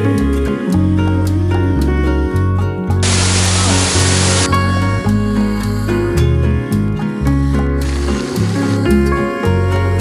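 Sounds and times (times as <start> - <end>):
background music: 0.0 - 10.0
waterfall rushing: 3.0 - 4.5.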